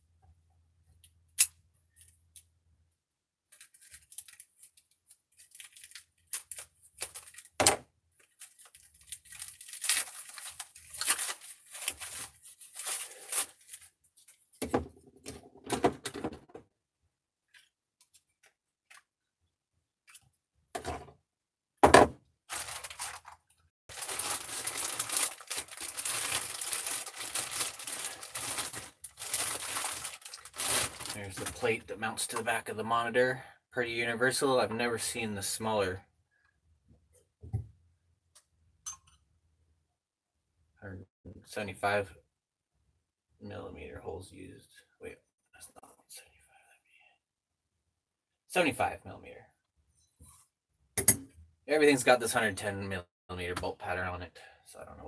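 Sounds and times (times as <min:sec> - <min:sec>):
plastic bag crinkling: 0:03.5 - 0:07.6, 0:08.2 - 0:14.0, 0:22.5 - 0:31.7.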